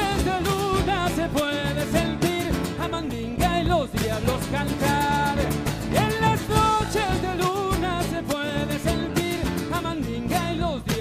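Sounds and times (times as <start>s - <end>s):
drums: 0.0s - 11.0s
electric bass: 0.0s - 11.0s
man singing: 0.0s - 11.0s
strummed acoustic guitars: 0.0s - 11.0s.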